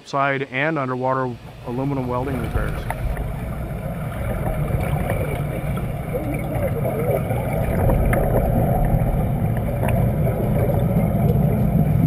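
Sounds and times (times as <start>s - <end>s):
air bubbles underwater: 1.4s - 12.0s
underwater rumble: 1.4s - 12.0s.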